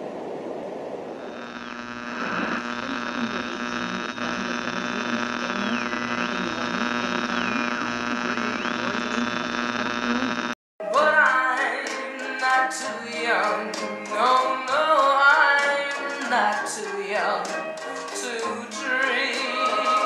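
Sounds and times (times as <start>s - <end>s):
electrical hum and buzz: 0.0s - 10.6s.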